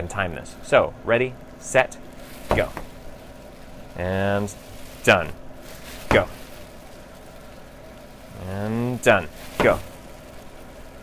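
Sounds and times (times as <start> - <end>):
fan running steadily: 0.0 - 11.0
plastic bag filling with air: 1.4 - 11.0.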